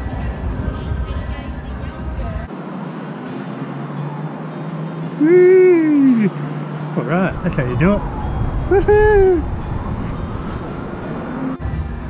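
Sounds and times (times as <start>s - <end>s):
person whooping: 5.2s - 6.4s, 7.4s - 9.7s
steady rushing noise: 6.4s - 11.6s.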